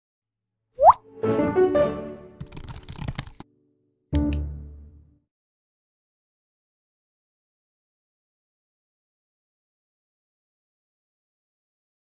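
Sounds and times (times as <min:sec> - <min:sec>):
upward-gliding plop: 0:00.8 - 0:01.0.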